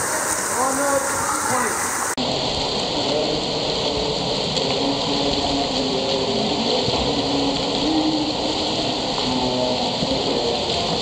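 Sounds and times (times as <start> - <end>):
water splashing in a pool: 0.0 - 11.0.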